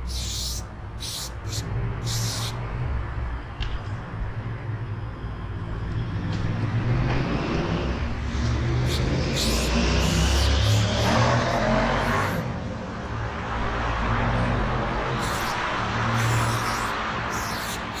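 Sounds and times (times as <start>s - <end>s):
spray paint can hissing: 0.0s - 2.6s, 8.8s - 11.1s, 15.1s - 18.0s
low traffic rumble: 0.0s - 18.0s.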